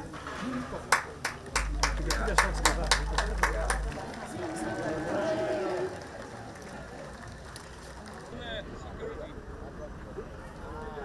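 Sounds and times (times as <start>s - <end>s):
onlookers talking outdoors: 0.0s - 11.0s.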